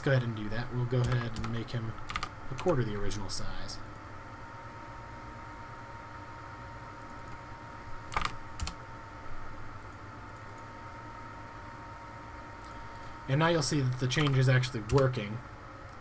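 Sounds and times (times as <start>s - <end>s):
steady low hum: 0.0s - 16.0s
keyboard keystrokes: 8.1s - 8.8s, 14.2s - 15.1s.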